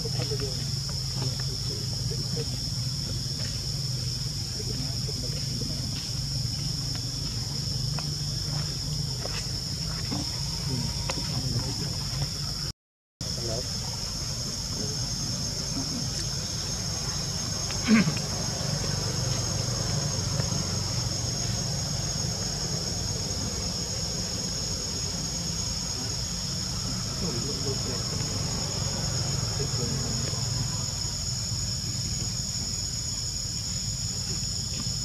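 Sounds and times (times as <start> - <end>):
insect chorus: 0.0 - 35.0.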